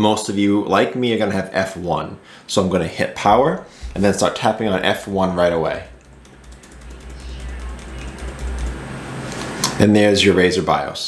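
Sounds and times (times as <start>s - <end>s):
laptop key tapping: 6.0s - 8.9s.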